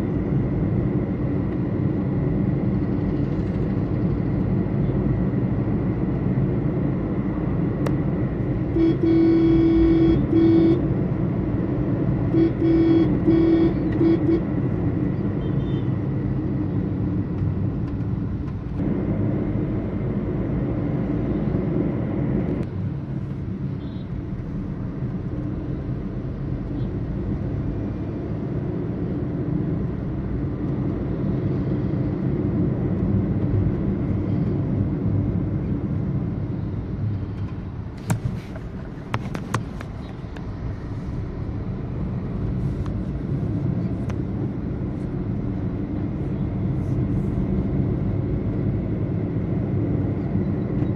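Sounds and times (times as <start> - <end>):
car road and engine rumble: 0.0 - 50.9
car horn honking: 8.7 - 10.8, 12.3 - 14.5.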